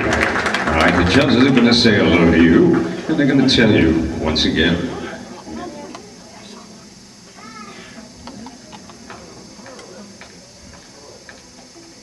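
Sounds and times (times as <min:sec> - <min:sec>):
room noise: 0:00.0 - 0:12.0
faint high-pitched voice: 0:05.0 - 0:08.6.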